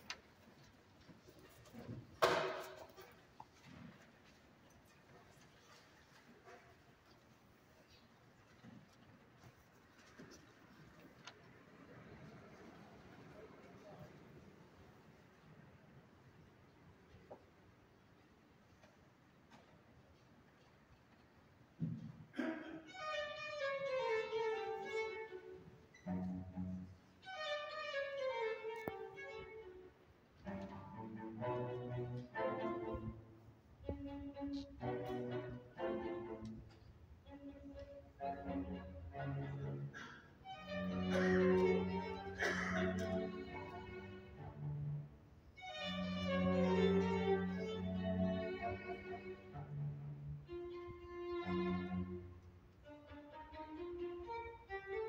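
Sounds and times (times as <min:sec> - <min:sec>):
string quartet playing: 0:23.0 - 0:55.0.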